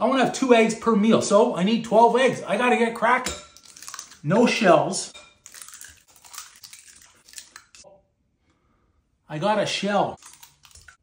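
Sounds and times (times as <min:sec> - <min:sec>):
eggshells cracking: 0:03.5 - 0:04.3, 0:05.4 - 0:07.8, 0:10.2 - 0:11.0.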